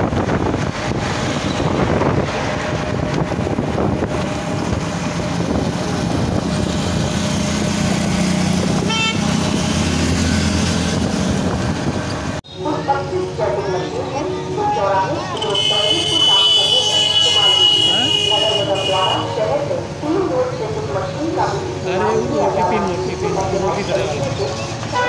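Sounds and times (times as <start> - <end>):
wind buffeting microphone: 0.0 - 12.4
vehicle engine and road noise: 0.0 - 25.0
car horn toot: 8.8 - 9.4, 15.4 - 19.4.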